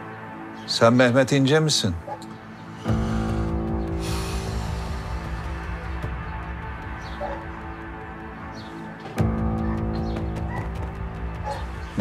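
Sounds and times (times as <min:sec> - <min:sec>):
tense low drone music: 0:02.3 - 0:12.0.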